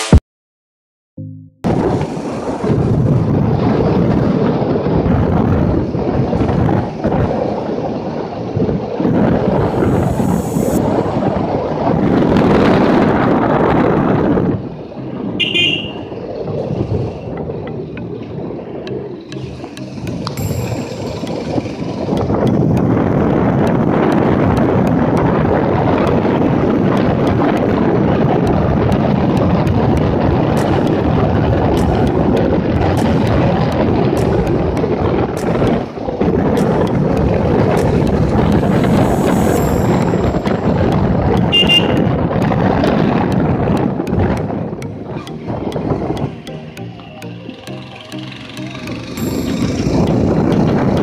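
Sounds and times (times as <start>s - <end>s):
wind buffeting microphone: 1.6s - 46.6s, 47.4s - 51.0s.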